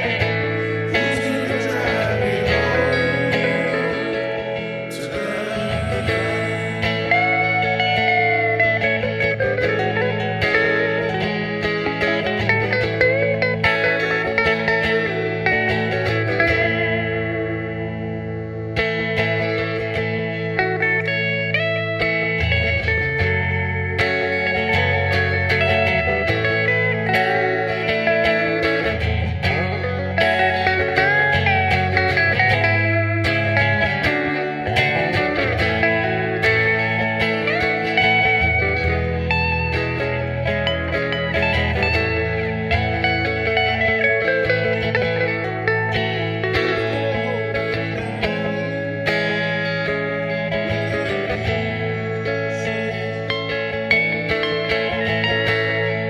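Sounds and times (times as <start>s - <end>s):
electric guitar lead melody: 0.0s - 56.0s.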